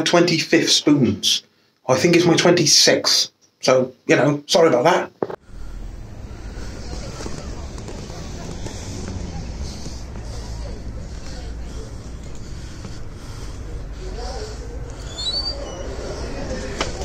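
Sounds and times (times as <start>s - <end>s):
faint voices: 5.4s - 17.0s.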